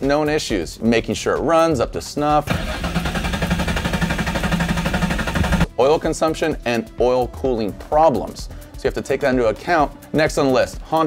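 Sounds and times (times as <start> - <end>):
car engine starting: 2.4 - 5.7.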